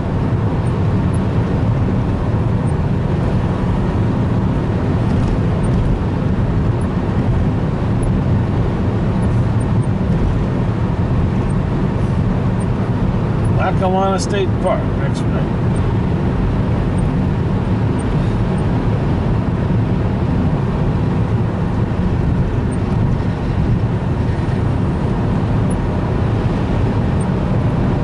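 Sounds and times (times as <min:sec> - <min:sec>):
car cabin road noise: 0:00.0 - 0:28.0.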